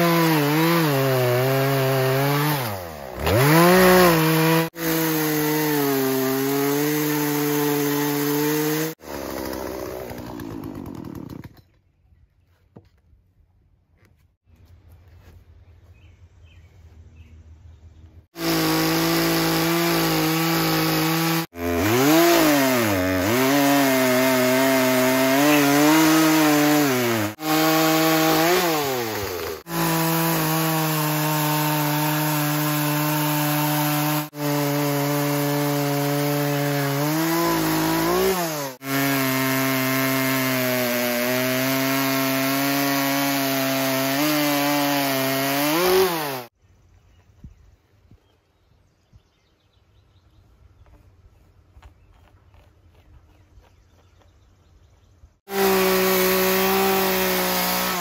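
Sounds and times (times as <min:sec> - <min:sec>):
chainsaw cutting log: 0:00.0 - 0:11.8, 0:18.3 - 0:46.6, 0:55.4 - 0:58.0.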